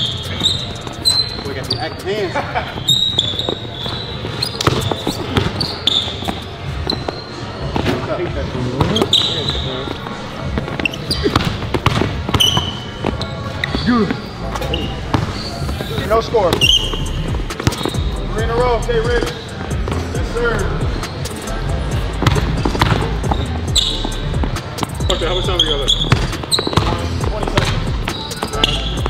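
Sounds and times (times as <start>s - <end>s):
sneakers squeaking: 0.0s - 29.0s
basketball dribbling on wood floor: 11.3s - 12.6s, 26.0s - 27.8s.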